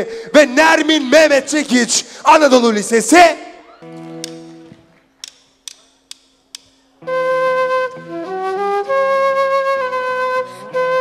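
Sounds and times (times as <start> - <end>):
drumsticks clicking together: 4.2 - 4.6, 5.2 - 6.9.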